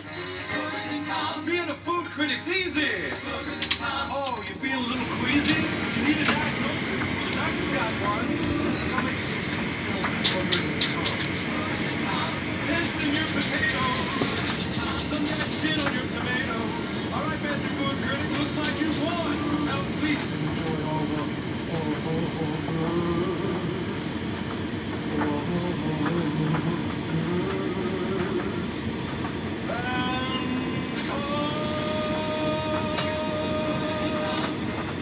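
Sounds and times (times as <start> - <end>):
steady whine: 0.0 - 35.0
tv voices: 0.0 - 35.0
washing machine spinning: 2.8 - 35.0.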